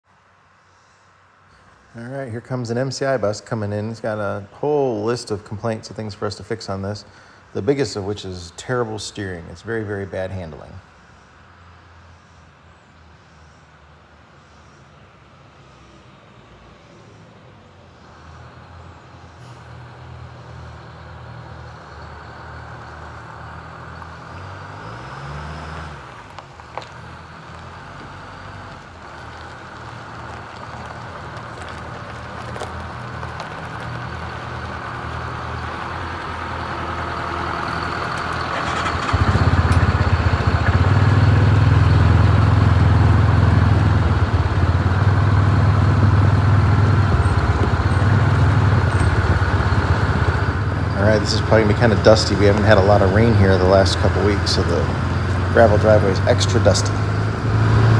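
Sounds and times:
bus diesel engine rumbling: 0.4 - 12.4, 16.6 - 57.9.

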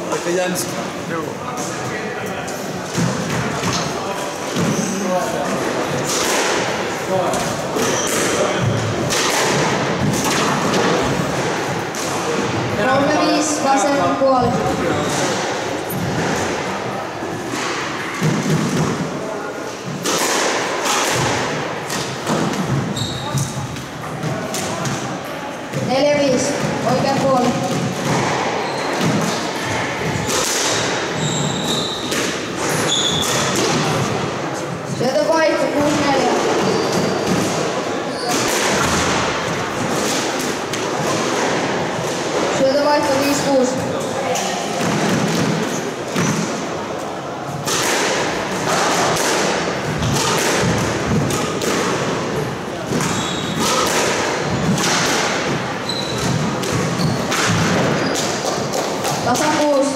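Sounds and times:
racket hitting squash ball: 2.8 - 59.9.

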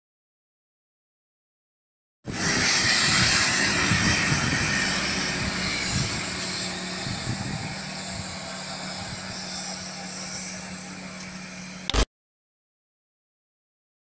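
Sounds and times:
vehicle engine running: 2.3 - 12.0.

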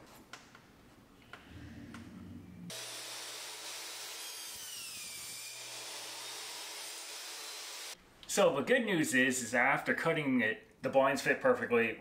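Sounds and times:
miter saw cutting: 2.7 - 8.0.

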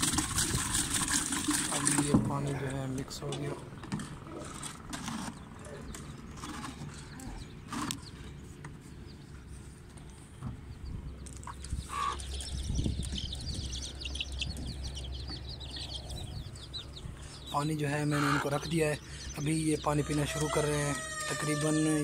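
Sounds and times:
chicks peeping: 0.0 - 22.0.

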